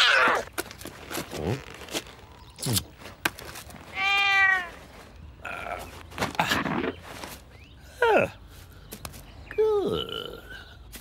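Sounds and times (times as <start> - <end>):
cat meowing: 3.9 - 4.7.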